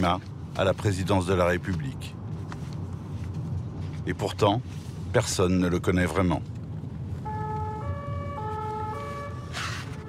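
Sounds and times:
car rumbling on road: 0.0 - 10.0
two-tone emergency siren: 7.2 - 10.0.

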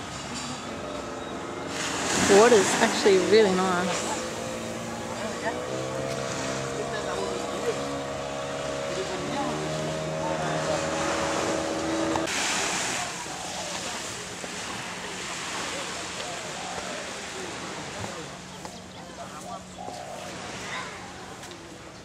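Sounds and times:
droning hum: 0.0 - 18.0
wind: 0.0 - 22.0
small waves washing onto sand: 1.7 - 21.9.

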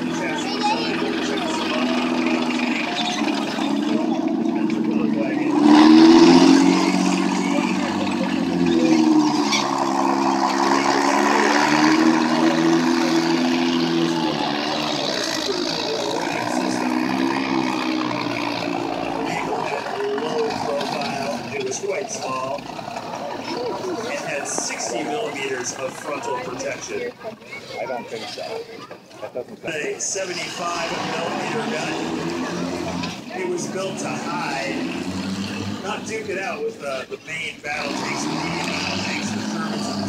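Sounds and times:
military vehicle engines running: 0.0 - 40.0.

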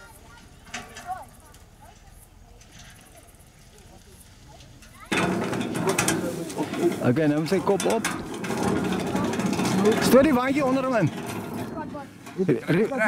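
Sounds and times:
faint voices: 0.0 - 13.0
people moving about and talking: 0.0 - 13.0.

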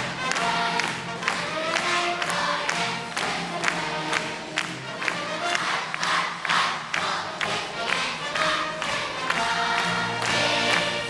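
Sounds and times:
choir singing with accompaniment: 0.0 - 11.0.

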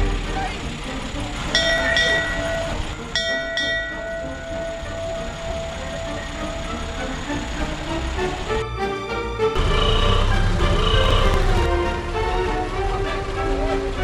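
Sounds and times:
background chatter: 0.0 - 8.6.

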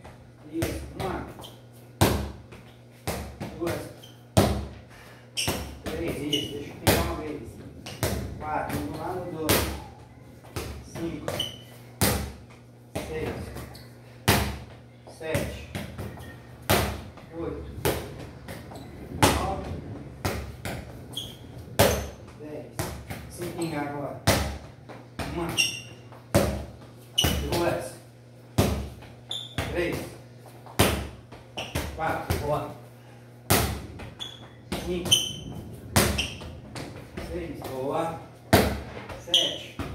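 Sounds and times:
football thuds: 5.4 - 13.7, 14.3 - 27.8, 28.6 - 32.6, 33.5 - 39.9.

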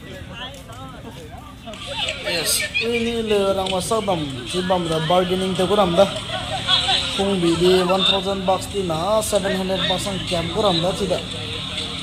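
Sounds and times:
indistinct talk of passers-by: 0.0 - 12.0
low street rumble: 0.0 - 12.0.

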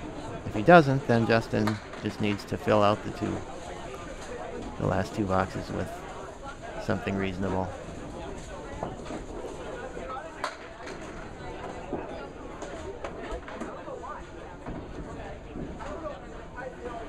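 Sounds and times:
background chatter: 0.0 - 17.0.

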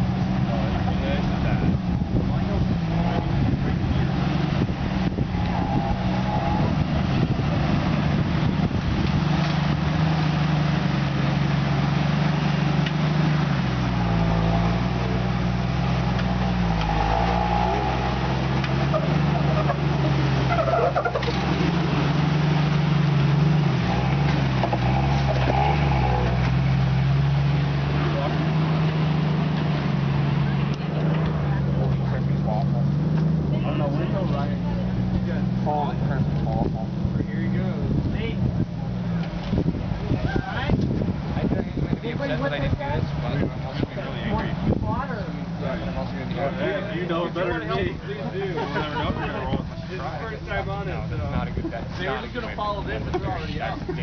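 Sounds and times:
off-road vehicle engine under load: 0.0 - 54.0.

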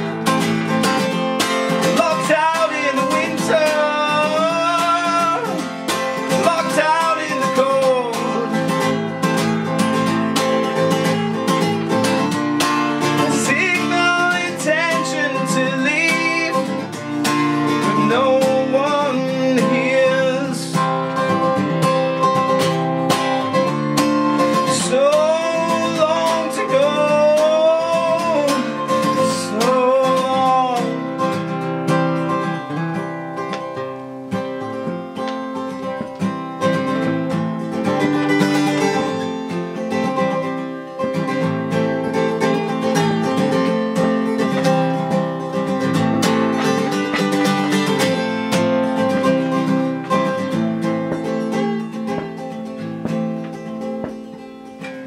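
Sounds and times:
acoustic guitar strumming: 0.0 - 55.0
man singing: 1.4 - 11.1, 13.0 - 21.6, 24.4 - 31.6.

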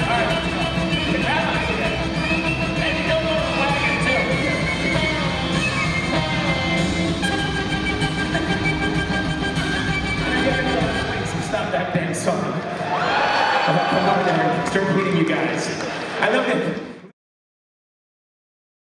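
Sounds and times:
live band music: 0.0 - 12.3.

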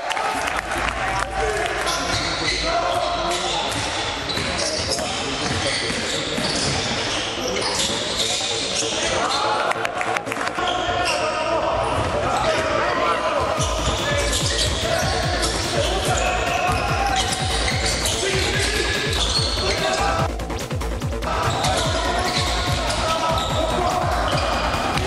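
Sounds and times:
ball bouncing on court: 3.6 - 6.8.

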